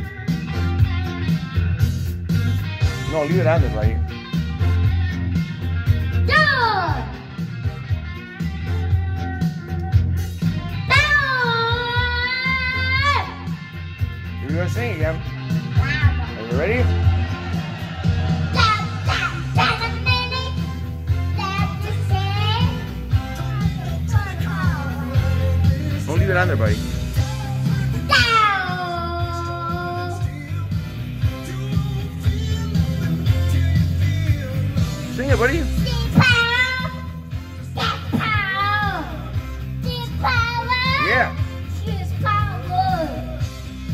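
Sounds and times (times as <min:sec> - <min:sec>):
rock music with guitar: 0:00.0 - 0:43.9
toddler singing into microphone: 0:10.9 - 0:13.4, 0:18.5 - 0:20.7, 0:27.3 - 0:30.4, 0:35.8 - 0:37.2, 0:37.8 - 0:41.1, 0:41.8 - 0:43.4.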